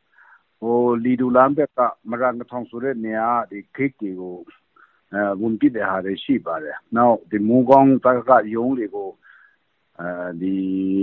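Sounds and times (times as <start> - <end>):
voice over telephone: 0.6 - 4.5, 5.1 - 9.2, 10.0 - 11.0.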